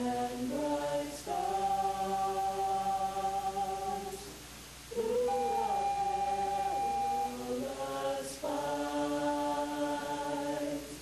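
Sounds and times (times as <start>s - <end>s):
a cappella choir singing: 0.0s - 11.0s.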